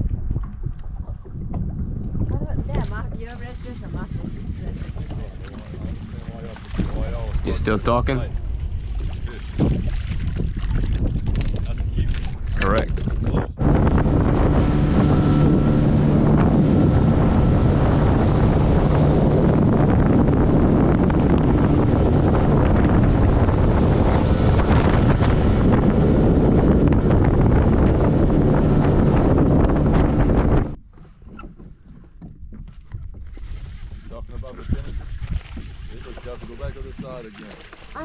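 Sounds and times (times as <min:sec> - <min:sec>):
boat motor running: 0:00.0 - 0:38.0
water rushing along hull: 0:00.0 - 0:38.0
wind on microphone: 0:00.0 - 0:38.0.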